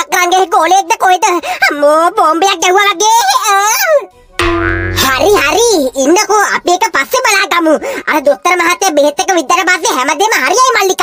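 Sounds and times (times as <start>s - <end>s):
comic sound effect tone: 4.4s - 6.0s
low hum: 4.4s - 6.2s.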